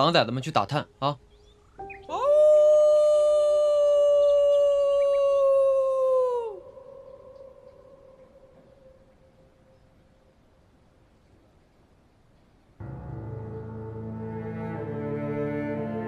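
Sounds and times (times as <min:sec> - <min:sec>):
wolf howling: 0:02.0 - 0:09.3.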